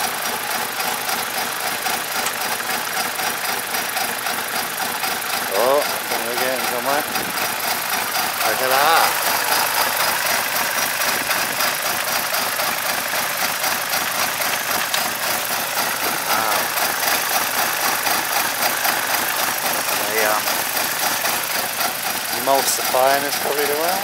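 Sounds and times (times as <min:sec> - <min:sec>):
car engine running: 0:00.0 - 0:24.0
oil froth churning: 0:00.0 - 0:24.0.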